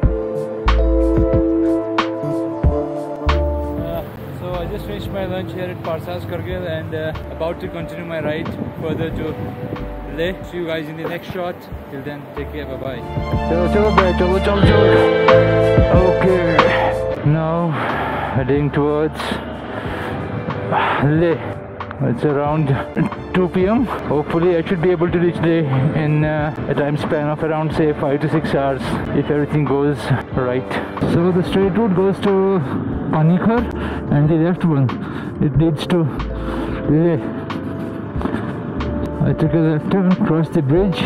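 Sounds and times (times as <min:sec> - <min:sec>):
road and wind noise: 0:00.0 - 0:41.0
man's voice: 0:03.7 - 0:19.5, 0:20.7 - 0:37.4, 0:39.2 - 0:41.0
wind rumble on microphone: 0:07.2 - 0:10.7.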